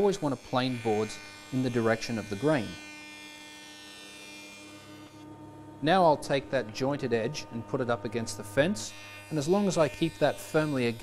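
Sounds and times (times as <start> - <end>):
quiet machine hum: 0.4 - 11.0.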